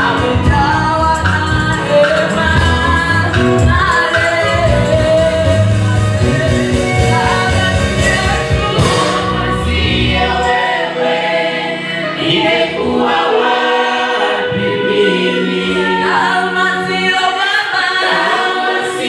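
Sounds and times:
choir singing in harmony: 0:00.0 - 0:19.0
low musical accompaniment: 0:00.0 - 0:19.0.

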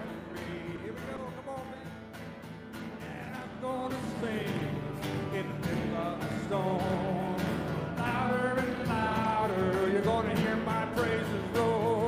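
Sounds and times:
man singing: 0:00.0 - 0:02.2, 0:02.8 - 0:12.0
strummed guitars: 0:00.0 - 0:12.0.

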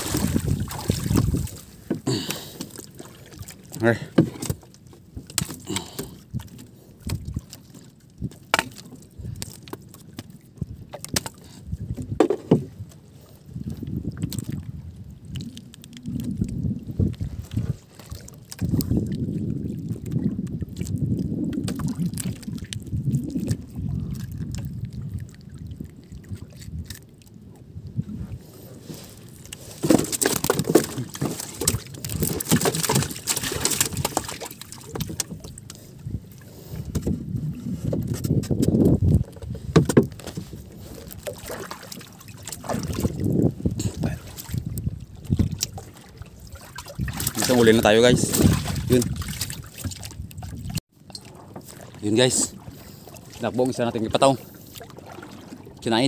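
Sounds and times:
wind buffeting microphone: 0:00.0 - 0:01.9, 0:06.1 - 0:07.5, 0:10.6 - 0:50.8
rushing water: 0:00.0 - 0:06.2, 0:28.7 - 0:35.8, 0:39.9 - 0:56.0
water sloshing against boat hull: 0:00.0 - 0:56.0.

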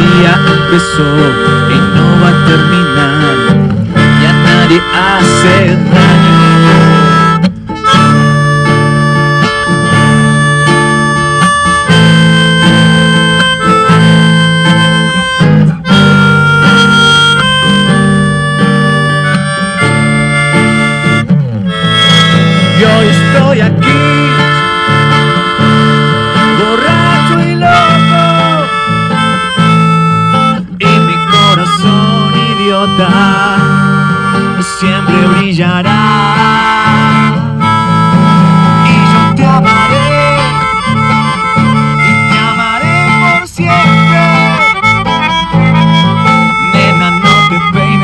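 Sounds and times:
harmonica melody: 0:00.0 - 0:48.0
strummed acoustic guitar: 0:00.0 - 0:48.0.

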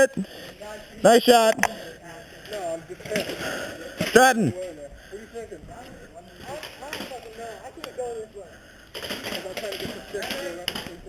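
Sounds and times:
rustling: 0:08.9 - 0:11.0.

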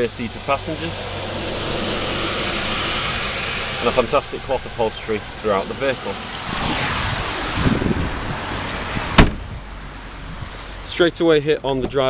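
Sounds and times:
car door shutting: 0:09.0 - 0:09.5.

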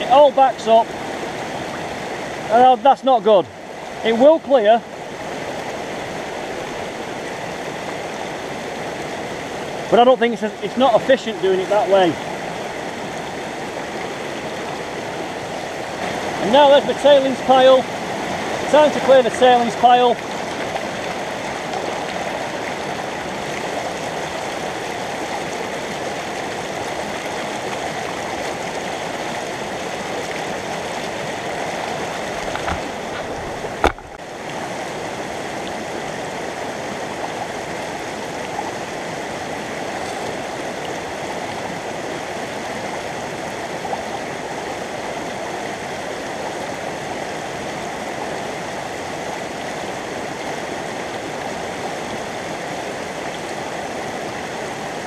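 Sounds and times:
stream rushing over rocks: 0:00.0 - 0:55.0.

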